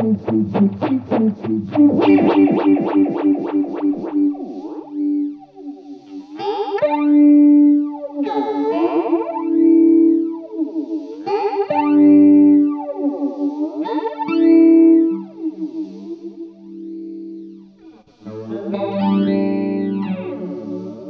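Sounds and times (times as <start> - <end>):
flanged electric guitar chords: 0.0 - 21.0.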